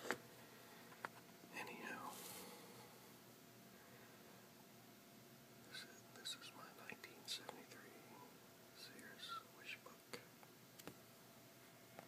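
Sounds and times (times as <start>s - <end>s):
soft whisper: 1.5s - 3.1s, 5.6s - 10.5s.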